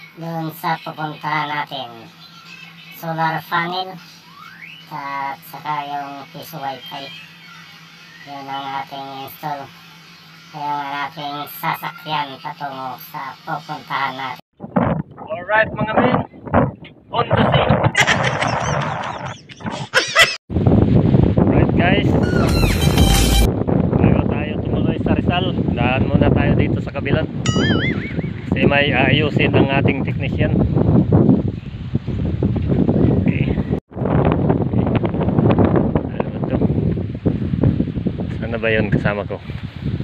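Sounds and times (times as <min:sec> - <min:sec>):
wind buffeting microphone: 0:14.6 - 0:40.0.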